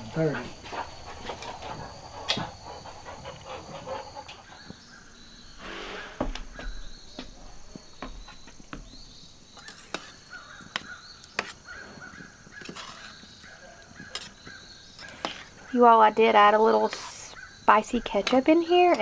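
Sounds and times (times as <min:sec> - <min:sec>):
spoon stirring beans in pan: 0:08.3 - 0:19.0.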